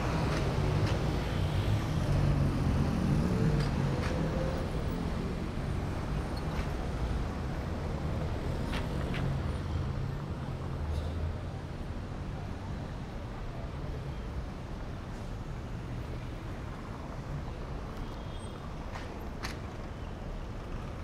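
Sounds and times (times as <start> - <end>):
traffic engine rumble: 0.0 - 21.0.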